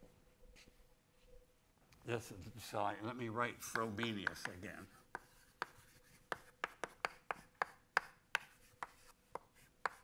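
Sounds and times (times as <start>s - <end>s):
chalk tapping on blackboard: 3.6s - 10.0s.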